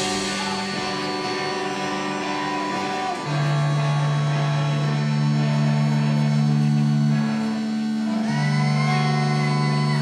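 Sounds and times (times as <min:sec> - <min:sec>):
low held note: 0:00.0 - 0:10.0
sustained keyboard and guitar notes: 0:00.0 - 0:10.0.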